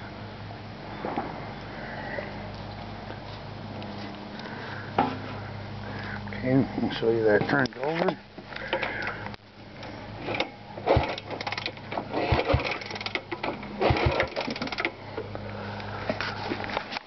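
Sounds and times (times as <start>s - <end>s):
steady low hum: 0.0s - 17.0s
engine kickstarter clicking: 10.2s - 15.0s.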